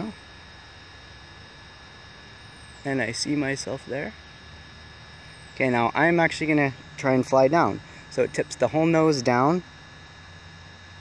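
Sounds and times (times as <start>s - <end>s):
low hum: 0.0s - 11.0s
man speaking: 2.9s - 4.2s, 5.6s - 9.6s.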